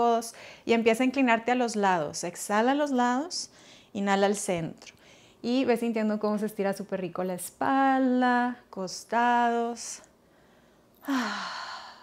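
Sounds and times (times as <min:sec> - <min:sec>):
woman sighing exhale: 0:11.0 - 0:12.0.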